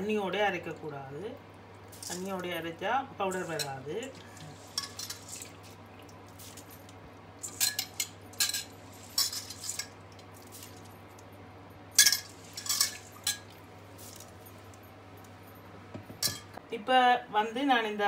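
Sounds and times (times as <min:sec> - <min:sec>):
steel bowls clinking: 0:03.3 - 0:05.5, 0:07.4 - 0:10.0, 0:12.0 - 0:14.6.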